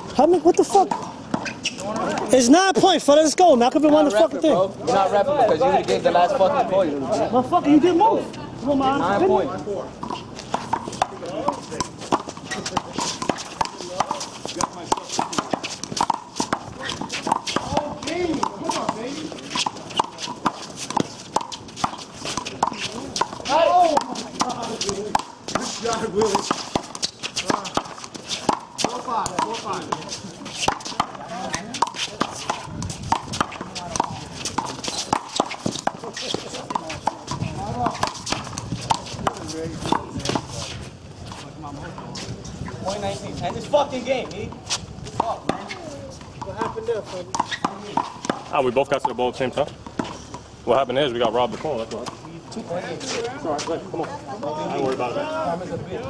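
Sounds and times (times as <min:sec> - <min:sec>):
rubber ball slapping: 0:10.4 - 0:30.0, 0:30.6 - 0:40.5.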